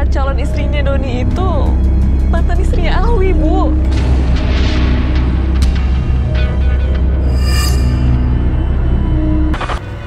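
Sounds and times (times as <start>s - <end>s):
low rumbling drone: 3.2s - 9.4s.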